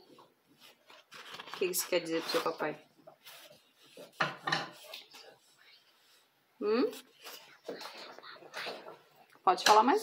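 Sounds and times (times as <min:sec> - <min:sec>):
toddler whispering: 0:07.0 - 0:09.0.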